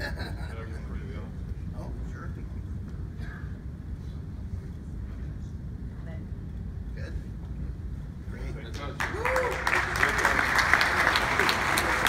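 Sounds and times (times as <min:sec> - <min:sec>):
low rumble of room noise: 0:00.0 - 0:12.0.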